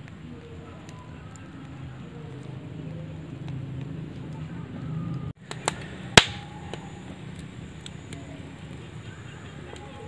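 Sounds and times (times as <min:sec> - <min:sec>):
sharp crack with ringing tail: 0:05.4 - 0:08.2.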